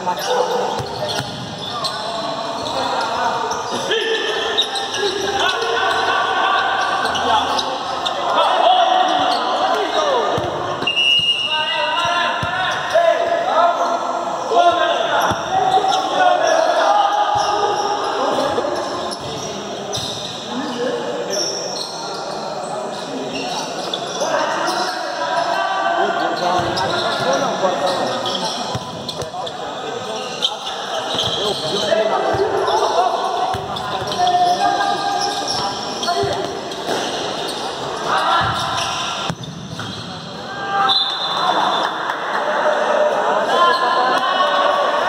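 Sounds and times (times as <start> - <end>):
players shouting: 3.7 - 18.6
ball kicked and bouncing on court: 38.4 - 40.2.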